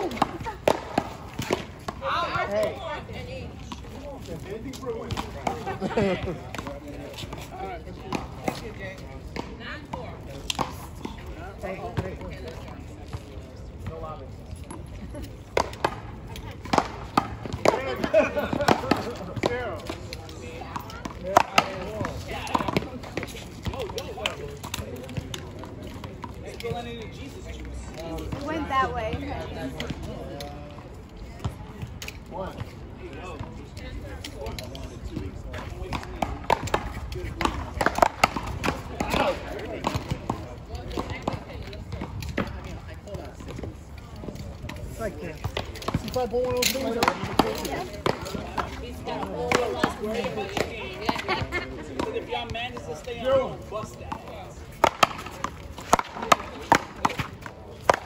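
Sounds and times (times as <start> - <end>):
players' voices: 0.0 - 58.0
paddles hitting rubber ball: 15.5 - 26.8, 35.9 - 43.7, 44.3 - 58.0
ball hitting concrete wall: 54.8 - 58.0.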